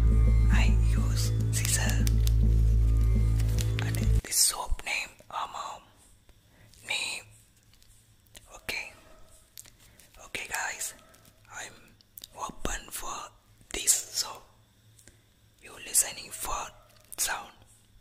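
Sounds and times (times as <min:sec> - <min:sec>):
man whispering: 0:00.5 - 0:02.2, 0:03.8 - 0:06.0, 0:06.7 - 0:07.4, 0:08.4 - 0:09.1, 0:10.1 - 0:14.6, 0:15.6 - 0:17.7.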